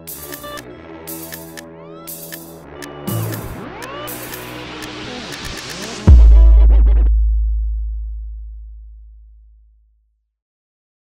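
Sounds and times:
deep synth bass note: 3.1 - 3.8, 6.1 - 9.8.

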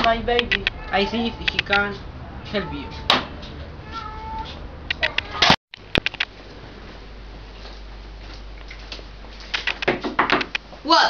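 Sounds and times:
high-pitched mewing cry: 3.8 - 5.6.

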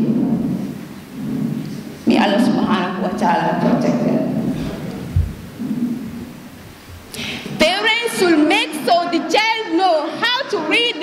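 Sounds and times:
low rumbling noise: 0.0 - 7.9.

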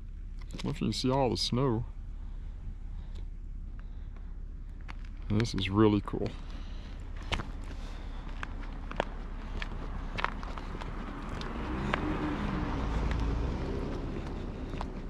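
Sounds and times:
steady low rumble: 0.0 - 15.0
footsteps on wet pavement: 6.2 - 15.0
passing car: 6.2 - 15.0.

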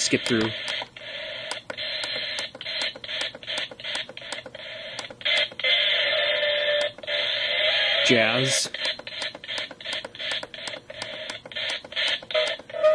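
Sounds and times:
garbled radio station: 0.0 - 2.1, 5.3 - 10.8
radio static: 0.0 - 4.4
tuning clicks: 0.0 - 5.6, 6.7 - 7.1, 8.7 - 12.9.

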